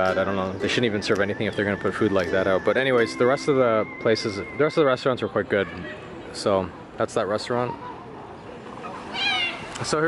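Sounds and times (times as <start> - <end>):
high-pitched animal cry: 9.1 - 9.7.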